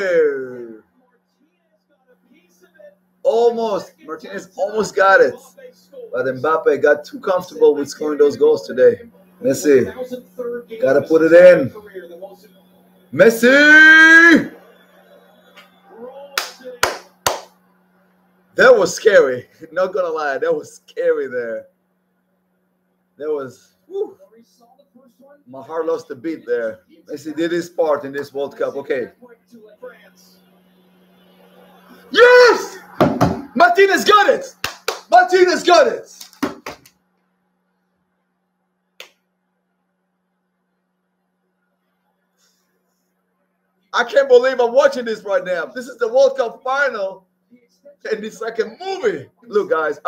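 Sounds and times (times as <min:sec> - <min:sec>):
faint steady hum: 0:00.0 - 0:50.0
sharp hand claps: 0:15.4 - 0:17.6, 0:34.5 - 0:35.1, 0:36.1 - 0:37.0, 0:39.0 - 0:39.2.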